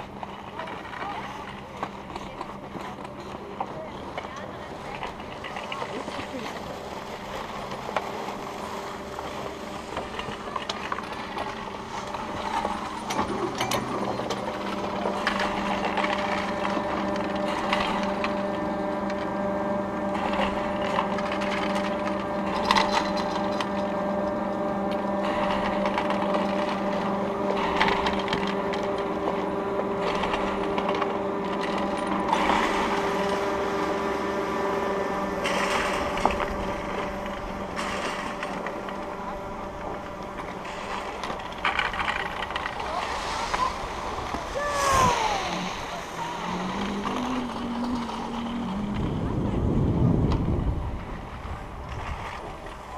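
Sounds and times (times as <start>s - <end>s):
ski lift mechanical hum: 0.0s - 52.9s
skis sliding over snow: 41.9s - 48.2s.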